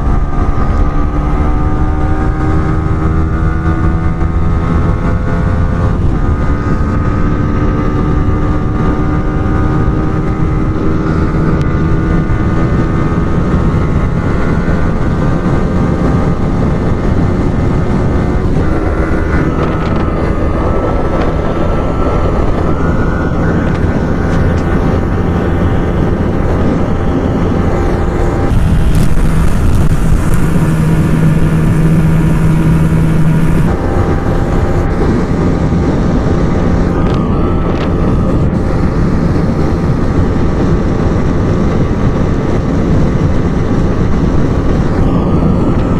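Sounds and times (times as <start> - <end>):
heavy wind rush: 0.0 - 45.9
motorcycle engine at high revs: 0.0 - 45.9.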